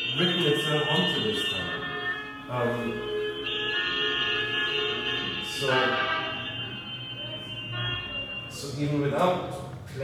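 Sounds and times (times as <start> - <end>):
higher car horn: 0.0 - 8.8.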